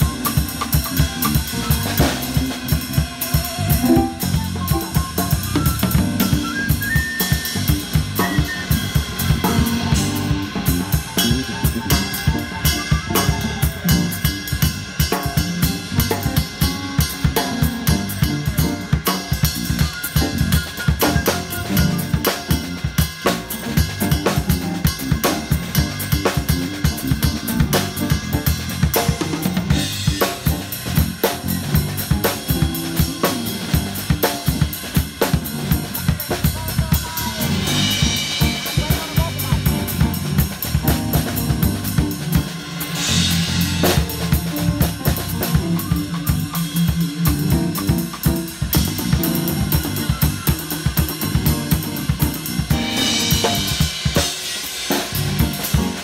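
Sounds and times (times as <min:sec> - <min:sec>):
drum kit played with sticks: 0:00.0 - 0:56.0.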